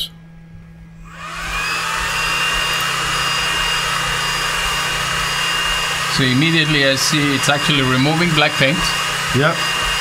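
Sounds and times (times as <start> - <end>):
cooling fan whirring and whining: 0.0 - 10.0.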